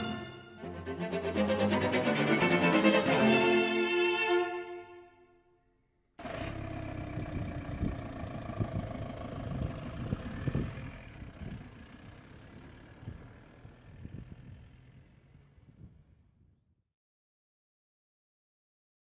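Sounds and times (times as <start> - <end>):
string quartet chord: 0.0 - 5.5
car driving off: 6.2 - 16.3.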